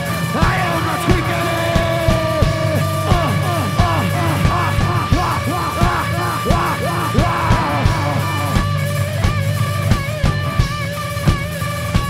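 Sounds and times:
hard rock band playing: 0:00.0 - 0:12.0
drum hits: 0:00.4 - 0:12.0.

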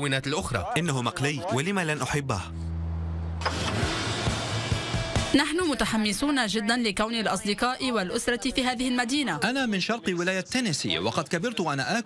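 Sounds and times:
street traffic noise: 0:02.4 - 0:06.0.

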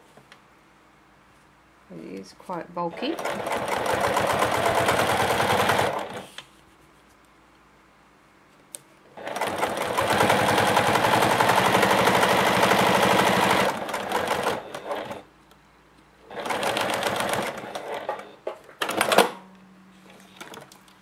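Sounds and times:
sewing machine stitching: 0:02.9 - 0:06.2, 0:09.2 - 0:15.2, 0:16.3 - 0:19.3.

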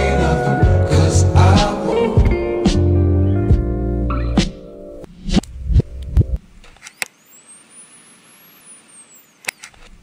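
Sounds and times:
soft steady hiss: 0:05.5 - 0:10.0.

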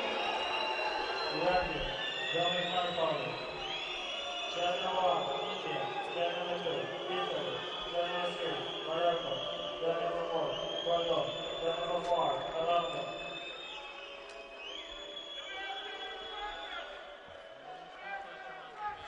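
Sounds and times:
indistinct voices echoing in hall: 0:00.0 - 0:19.0.

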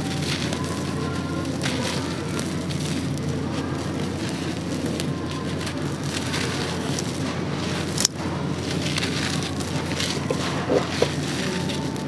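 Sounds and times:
cement balls crumbling in hands: 0:00.0 - 0:12.0
grains falling onto powder: 0:00.0 - 0:12.0.

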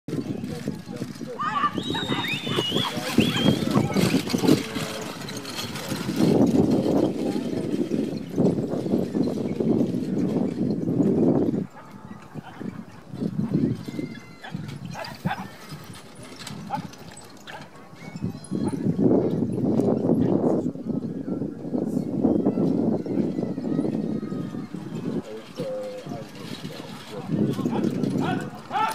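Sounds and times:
indistinct voices: 0:00.1 - 0:28.9
wind rumbling on microphone: 0:00.1 - 0:28.9.

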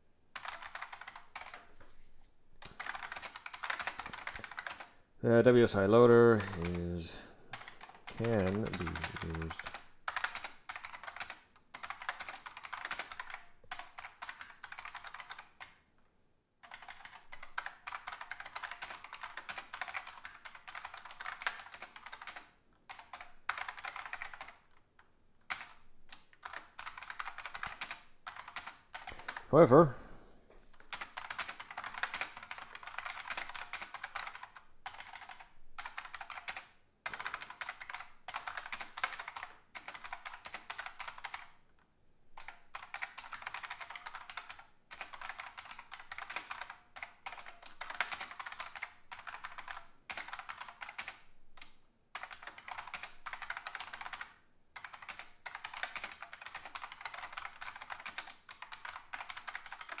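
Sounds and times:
computer keyboard typing: 0:00.3 - 0:01.8, 0:02.6 - 0:05.0, 0:05.6 - 0:15.8, 0:16.6 - 0:29.8, 0:30.7 - 0:41.6, 0:42.4 - 1:00.0.

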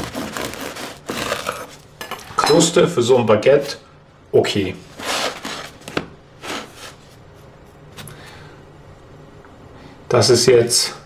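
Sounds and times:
bread crust crackling on wooden board: 0:00.0 - 0:01.9.

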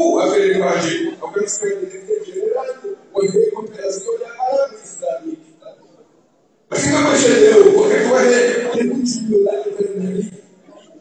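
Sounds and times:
loud voice with held pitch: 0:00.0 - 0:06.1, 0:06.7 - 0:11.0.

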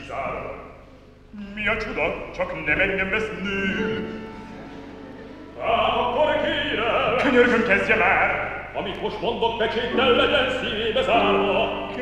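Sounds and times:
man singing opera with vibrato: 0:03.3 - 0:04.2, 0:05.6 - 0:07.0, 0:09.9 - 0:12.0
piano accompaniment: 0:09.7 - 0:12.0.

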